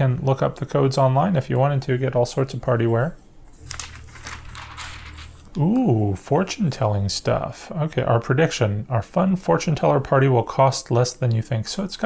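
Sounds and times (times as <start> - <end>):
paper pages rustling: 3.5 - 5.9.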